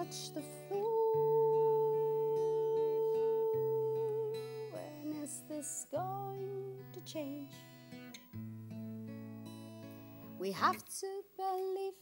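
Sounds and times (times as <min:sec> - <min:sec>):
woman singing: 0:00.0 - 0:07.6, 0:10.3 - 0:12.0
acoustic guitar: 0:00.0 - 0:12.0.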